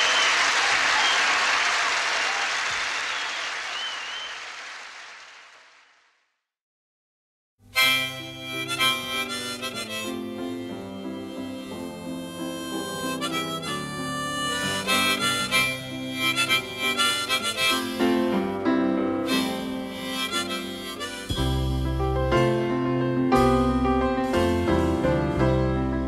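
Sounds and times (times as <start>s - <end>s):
harmonica melody: 7.7s - 22.6s
piano: 7.7s - 26.0s.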